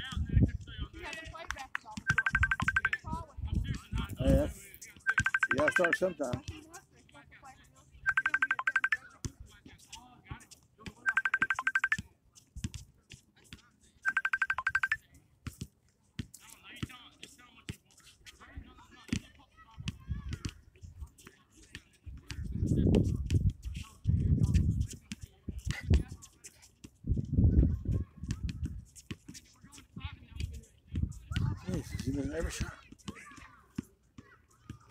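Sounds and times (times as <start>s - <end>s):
telephone ringing: 2.1s - 3.0s, 5.1s - 6.0s, 8.1s - 9.0s, 11.1s - 12.0s, 14.1s - 15.0s.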